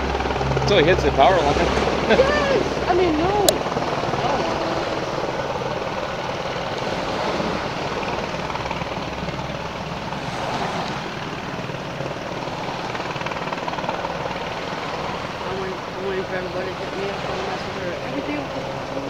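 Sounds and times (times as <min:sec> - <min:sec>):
helicopter hovering: 0:00.0 - 0:19.0.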